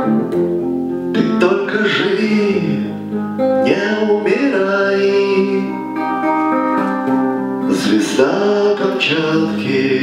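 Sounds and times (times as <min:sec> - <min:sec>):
fingerpicked guitar chords: 0:00.0 - 0:10.0.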